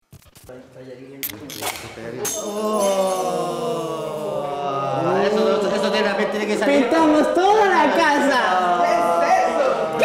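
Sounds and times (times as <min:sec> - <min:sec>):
indistinct voices: 0:01.2 - 0:10.0.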